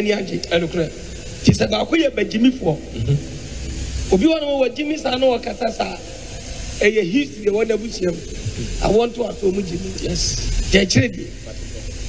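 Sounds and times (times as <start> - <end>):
steady background hiss: 0.0 - 12.0
person talking: 6.8 - 11.6.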